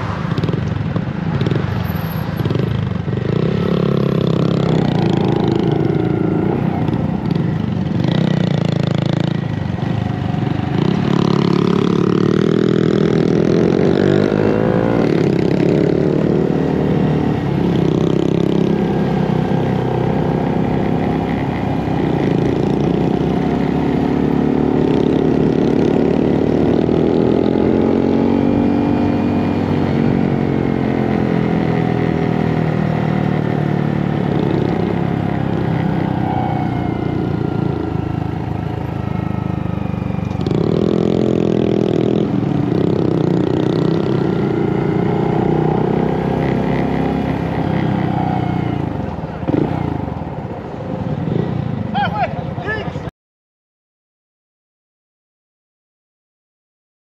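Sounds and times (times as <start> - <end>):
motorcycle engine revving: 0.0 - 52.0.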